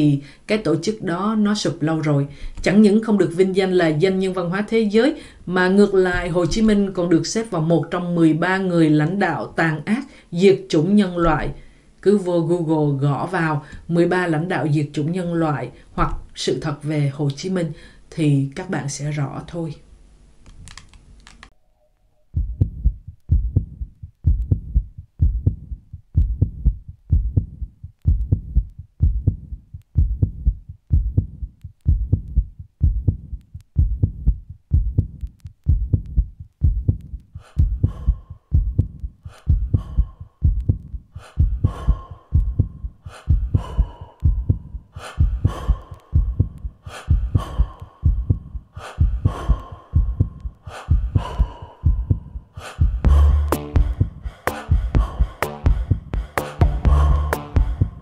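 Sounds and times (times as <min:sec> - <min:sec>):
heartbeat-like thumps: 0:22.3 - 0:58.0
tense music: 0:52.8 - 0:58.0.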